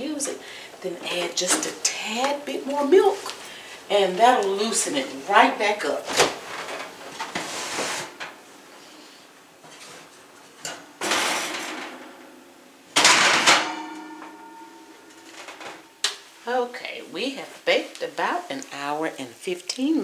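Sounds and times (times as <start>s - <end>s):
rustling: 6.0s - 11.7s.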